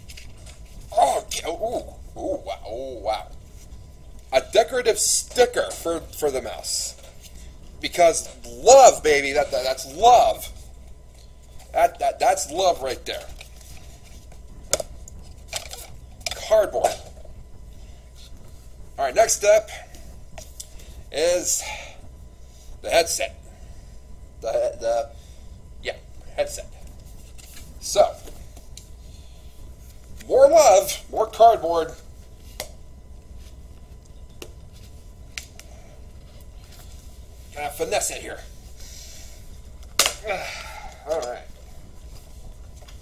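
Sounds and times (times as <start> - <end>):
low background hum: 0.0 - 43.0.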